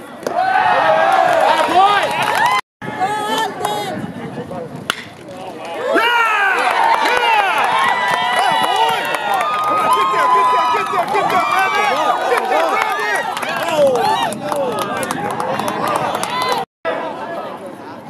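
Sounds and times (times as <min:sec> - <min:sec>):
crowd yelling and cheering: 0:00.3 - 0:03.6, 0:05.7 - 0:17.4.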